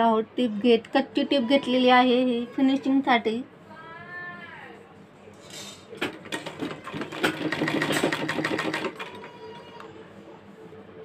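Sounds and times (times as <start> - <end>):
sewing machine stitching: 6.0 - 9.2.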